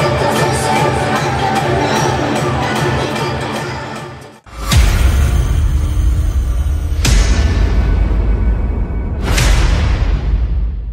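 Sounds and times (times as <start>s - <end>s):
cinematic hit: 4.5s - 10.9s.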